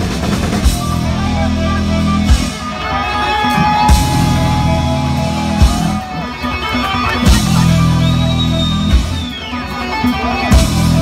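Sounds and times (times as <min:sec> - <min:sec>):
bass guitar: 0:00.0 - 0:11.0
electric guitar chords: 0:00.0 - 0:11.0.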